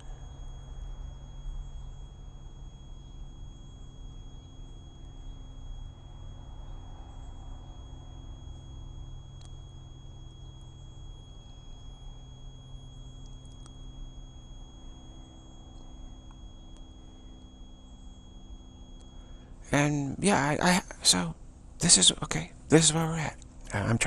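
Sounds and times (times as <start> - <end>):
faint high-pitched tone: 0.0 - 24.0
low electrical hum: 0.0 - 24.0.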